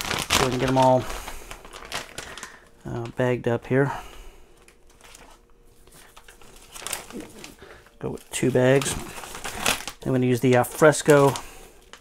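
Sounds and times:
plastic bag rustling and crinkling: 0:00.0 - 0:12.0.

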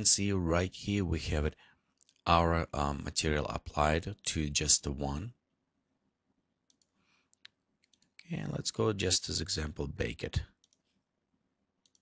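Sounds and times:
computer mouse clicks: 0:06.7 - 0:08.3, 0:10.6 - 0:10.9.

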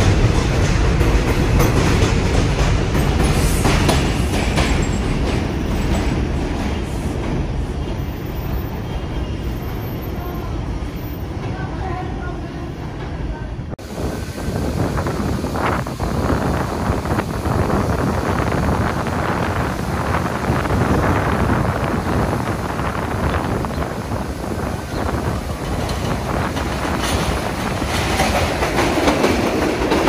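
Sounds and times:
distant train noise: 0:00.0 - 0:30.0
train rumble pulling away: 0:00.0 - 0:30.0
wind buffeting microphone: 0:13.8 - 0:30.0.

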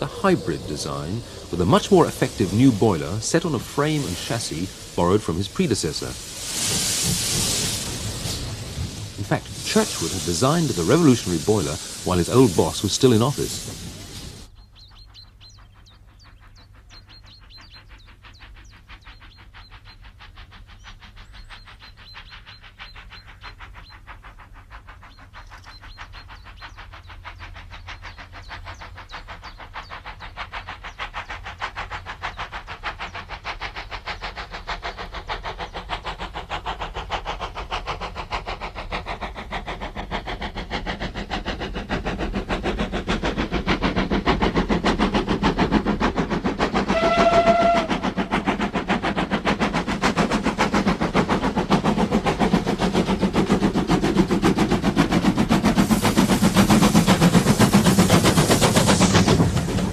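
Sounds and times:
steam locomotive exhaust beats: 0:00.0 - 0:59.9
steam whistle blast: 0:46.9 - 0:48.0.

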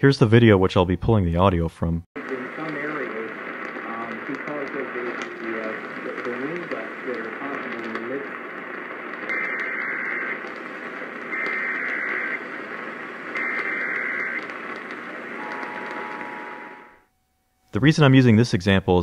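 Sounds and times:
voice over radio: 0:01.8 - 0:08.4
radio static: 0:02.2 - 0:17.0
two-tone data warbling: 0:11.4 - 0:12.4, 0:13.4 - 0:14.4
two-tone attention signal: 0:15.4 - 0:17.0.

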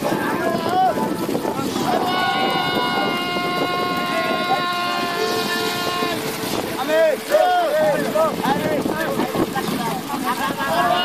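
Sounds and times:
wind and sea hiss: 0:00.0 - 0:11.0
voices singing: 0:01.9 - 0:08.6.

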